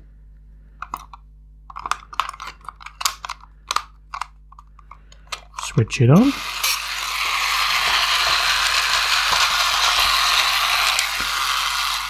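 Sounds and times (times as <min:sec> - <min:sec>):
toy robot motor whirring: 0:06.2 - 0:12.0.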